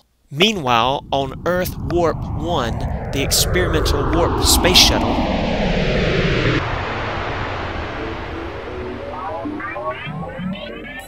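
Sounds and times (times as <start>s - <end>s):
spaceship flyby rushing rumble: 0.5s - 10.8s
synthesizer music: 6.4s - 11.0s.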